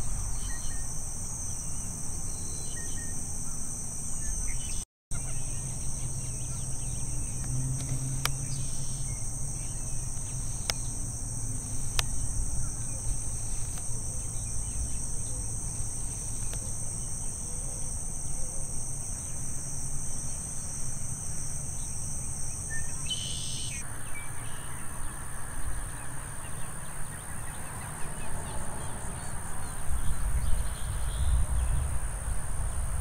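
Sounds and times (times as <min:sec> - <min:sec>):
low wind rumble: 0:00.0 - 0:02.5, 0:03.1 - 0:22.6, 0:23.9 - 0:33.0
high-pitched insect chorus: 0:00.0 - 0:33.0.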